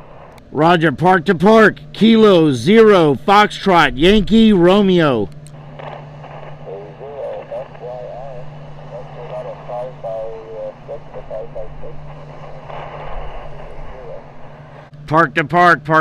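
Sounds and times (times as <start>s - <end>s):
low hum: 0.0s - 16.0s
radio static hiss: 0.0s - 16.0s
faint radio voice: 6.2s - 14.4s.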